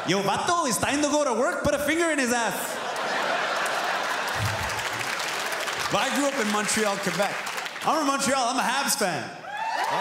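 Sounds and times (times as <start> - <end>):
audience laughing: 2.5 - 6.2
audience applauding: 2.9 - 8.4, 9.6 - 10.0.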